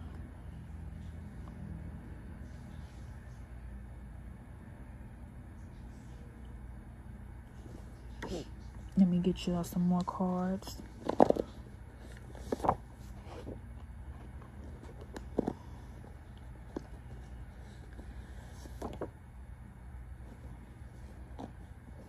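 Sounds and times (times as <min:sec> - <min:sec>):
faint low hum: 0:00.0 - 0:22.0
cards tapping and rustling: 0:10.0 - 0:19.2.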